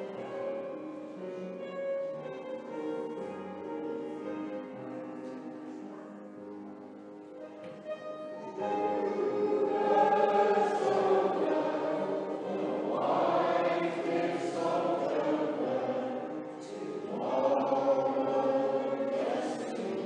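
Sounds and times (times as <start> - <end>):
choir singing: 8.4 - 20.0.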